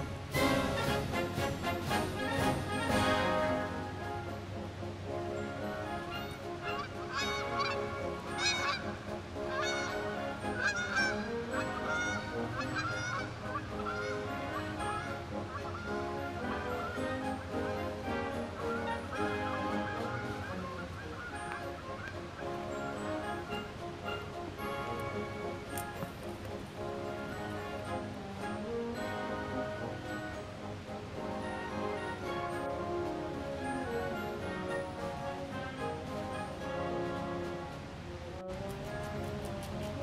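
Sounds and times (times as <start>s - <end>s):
background music with held notes: 0.0s - 40.0s
geese honking: 0.0s - 40.0s.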